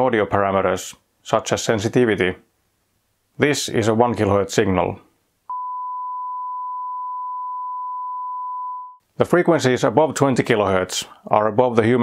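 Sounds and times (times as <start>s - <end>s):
sine-wave test tone: 5.5s - 9.0s.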